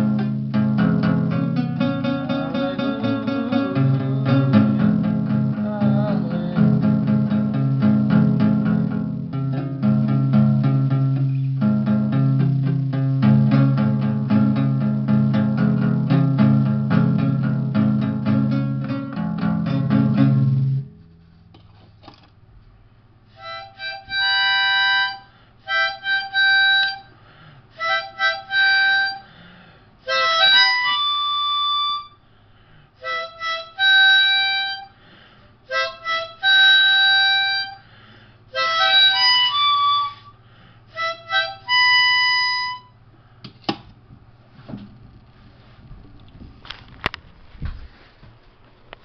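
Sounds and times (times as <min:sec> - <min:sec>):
harmonica solo: 0:00.0 - 0:10.0, 0:23.3 - 0:32.4, 0:33.0 - 0:43.0
acoustic guitar strum: 0:00.0 - 0:21.3.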